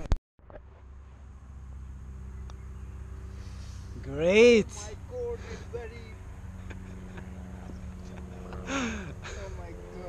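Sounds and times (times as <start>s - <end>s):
faint hum: 0.5s - 10.0s
man exclaiming: 4.1s - 6.2s.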